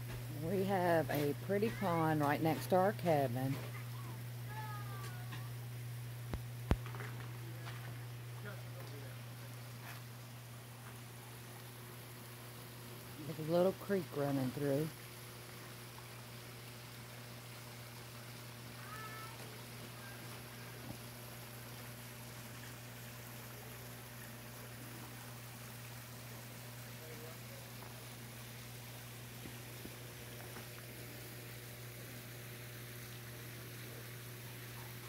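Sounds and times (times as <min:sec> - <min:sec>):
low steady hum: 0:00.0 - 0:35.0
creek trickling over rocks: 0:06.3 - 0:35.0.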